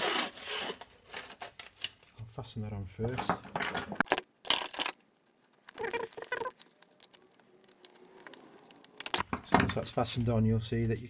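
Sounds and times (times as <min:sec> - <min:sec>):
plastic ducting scraping and rustling: 0:00.0 - 0:02.1.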